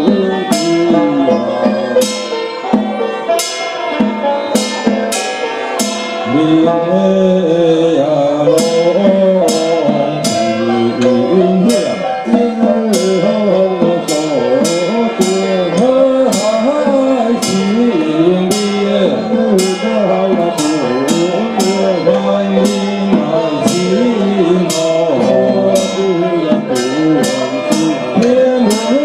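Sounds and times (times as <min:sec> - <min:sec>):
metal percussion strikes: 0:00.0 - 0:29.0
wavering ornamented melody: 0:00.0 - 0:29.0.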